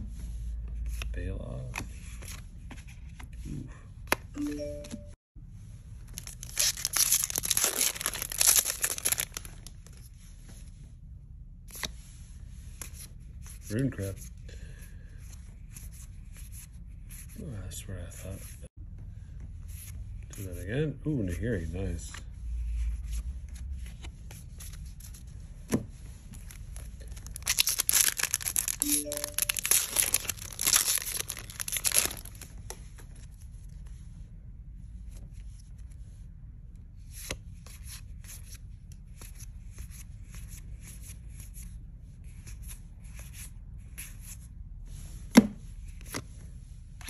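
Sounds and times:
trading cards being handled: 6.1 - 10.1, 21.2 - 33.4
foil wrapper tearing and crinkling: 6.2 - 9.7, 27.1 - 32.4.

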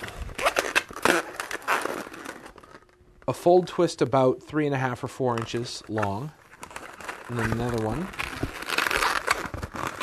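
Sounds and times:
balloon rubber rubbing: 0.0 - 2.9, 6.1 - 10.0
balloon squeaks: 0.0 - 3.3, 6.0 - 10.0.

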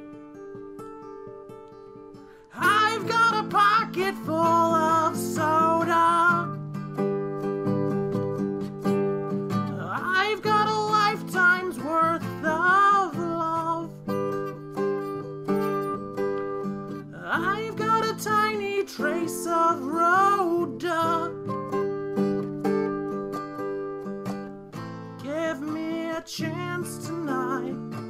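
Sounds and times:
man singing: 2.5 - 6.6, 9.7 - 14.1, 17.1 - 21.5, 25.2 - 28.0.

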